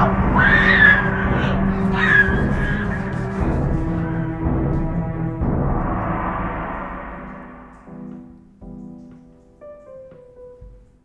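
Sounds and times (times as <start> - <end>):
high scream: 0.0 - 8.0
dark horror score drone: 0.0 - 8.5.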